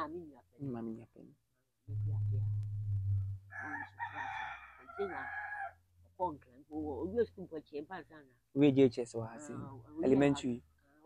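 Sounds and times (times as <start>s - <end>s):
low steady hum: 1.9s - 4.4s
rooster crowing: 3.5s - 5.8s.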